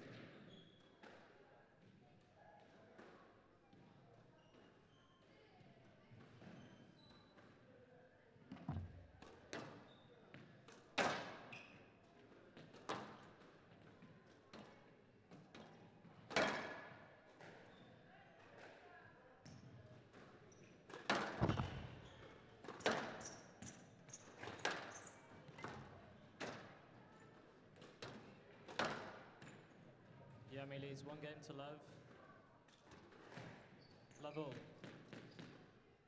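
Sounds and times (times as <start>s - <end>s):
squash ball striking court walls: 8.5s - 9.8s, 20.9s - 23.8s.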